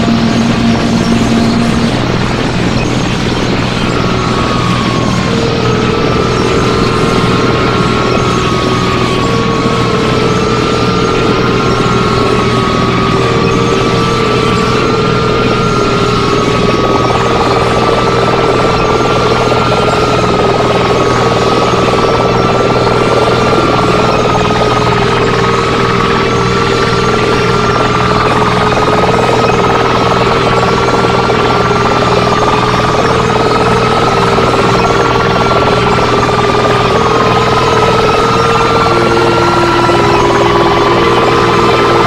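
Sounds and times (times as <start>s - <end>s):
harsh electronic noise music: 0.0s - 42.0s
looping two-pitch tones: 0.0s - 42.0s
steady low hum: 0.0s - 42.0s.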